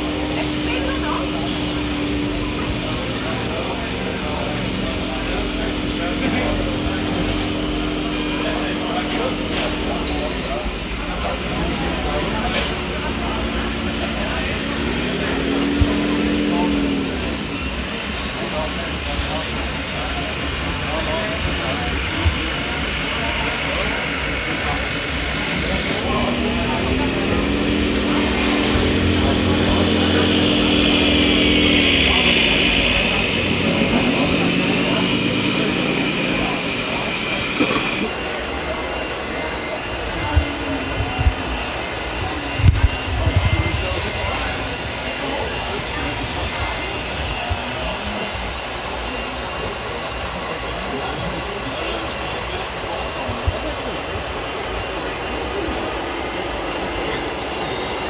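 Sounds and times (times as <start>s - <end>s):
model truck diesel engine revving: 0.0s - 19.3s, 22.2s - 38.2s
crowd chatter: 0.0s - 58.0s.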